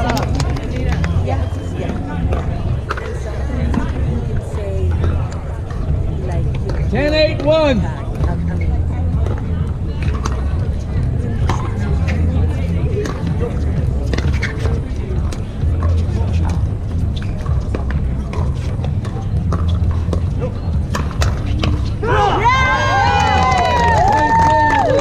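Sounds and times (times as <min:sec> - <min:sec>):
steady low rumble: 0:00.0 - 0:25.0.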